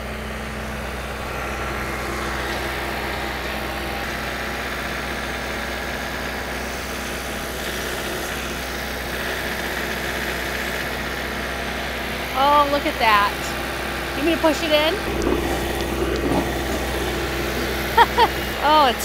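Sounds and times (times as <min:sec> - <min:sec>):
tractor diesel engine running: 0:00.0 - 0:19.0.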